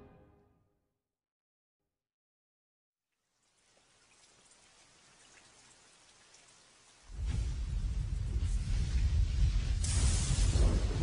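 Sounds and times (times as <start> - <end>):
faint rain-like patter and hiss: 3.2 - 11.0.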